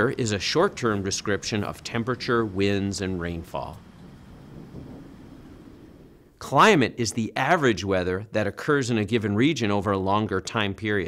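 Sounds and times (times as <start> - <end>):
faint steady rushing noise: 0.0 - 9.2.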